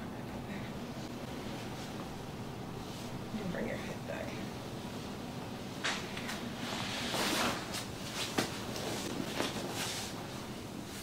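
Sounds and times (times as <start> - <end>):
clothing rustling on a mat: 6.6 - 11.0.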